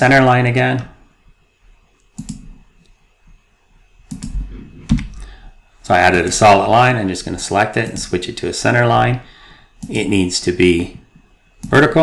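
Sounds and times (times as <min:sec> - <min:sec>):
computer mouse clicks: 0:02.0 - 0:03.0, 0:04.1 - 0:05.3.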